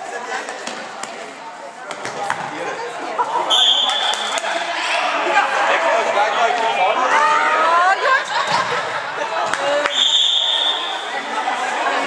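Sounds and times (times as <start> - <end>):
spectators talking: 0.0 - 12.0.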